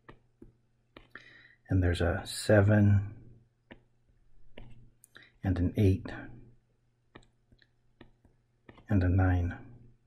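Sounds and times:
stylus tapping tablet screen: 0:00.0 - 0:01.5, 0:03.2 - 0:10.0.

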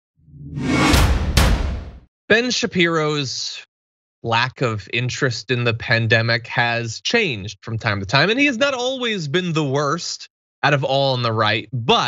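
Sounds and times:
deep bass: 0:00.3 - 0:02.0
whoosh: 0:00.3 - 0:02.0
sharp hits: 0:00.4 - 0:02.0.

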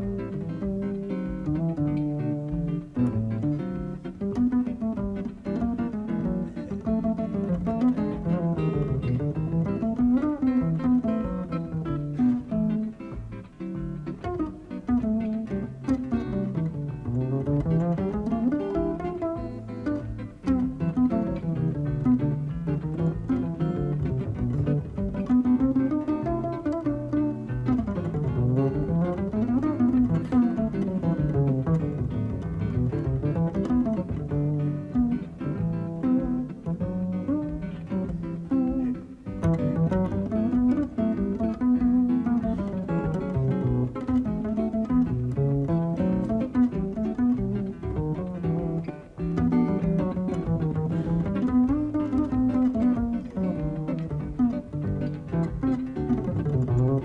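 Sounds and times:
double bass plucked jazz runs: 0:00.0 - 0:57.0.

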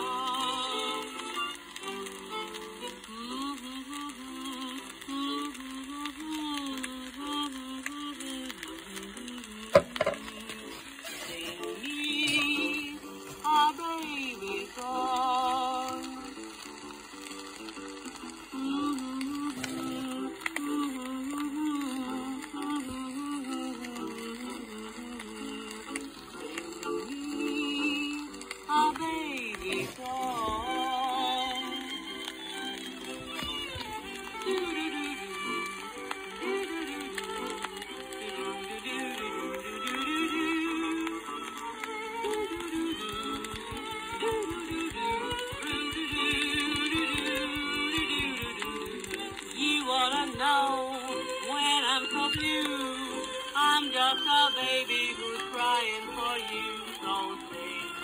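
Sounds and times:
guitar and piano accompaniment: 0:00.0 - 0:05.6, 0:07.5 - 0:58.0
violin melody with vibrato: 0:30.1 - 0:58.0.

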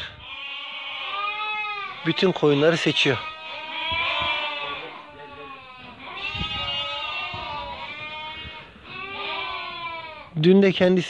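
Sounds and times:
sheep bleating: 0:00.1 - 0:10.4.

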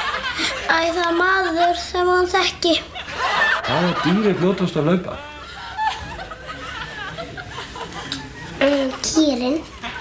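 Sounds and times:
audience chuckling and laughing: 0:00.0 - 0:00.9, 0:02.9 - 0:10.0
conversation: 0:00.0 - 0:10.0.

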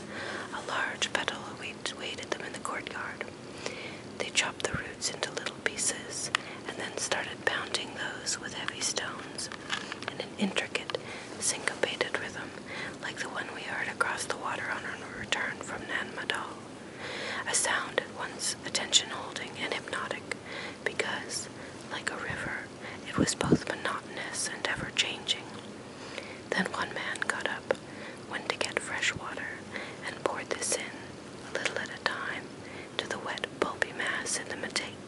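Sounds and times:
person whispering: 0:00.4 - 0:03.3, 0:04.2 - 0:16.6, 0:17.4 - 0:25.6, 0:26.5 - 0:35.0.

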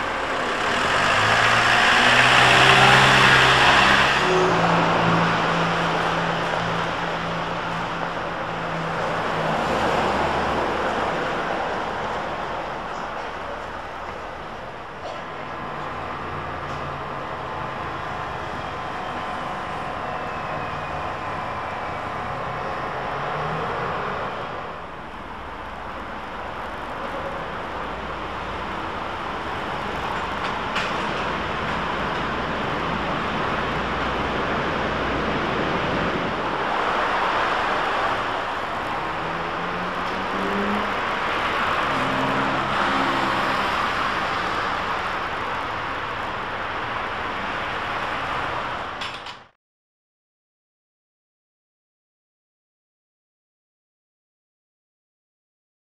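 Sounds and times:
railway platform rushing noise: 0:00.0 - 0:49.6
road traffic noise: 0:00.0 - 0:49.6.

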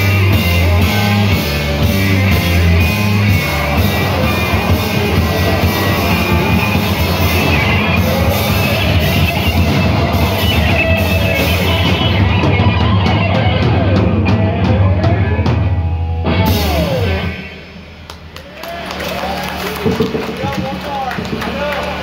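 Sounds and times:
punk band playing live: 0:00.0 - 0:22.0.

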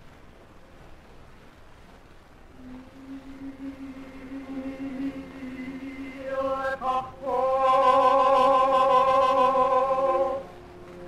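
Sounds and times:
higher sung note: 0:02.5 - 0:11.0
low held singing note: 0:02.5 - 0:11.0.

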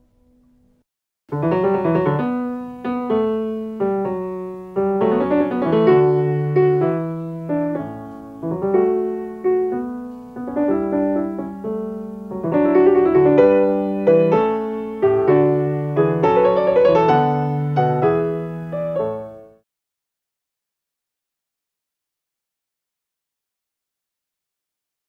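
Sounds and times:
solo piano melody: 0:00.0 - 0:19.6.

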